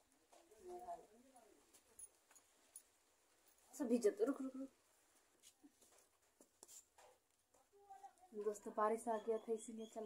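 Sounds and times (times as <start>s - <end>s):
faint clicks and rustles: 0.0s - 3.8s, 4.9s - 8.8s.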